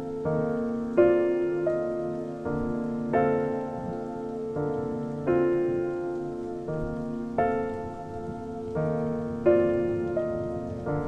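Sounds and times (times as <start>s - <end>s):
rain patter: 0.0s - 11.0s
slow piano waltz: 0.0s - 11.0s.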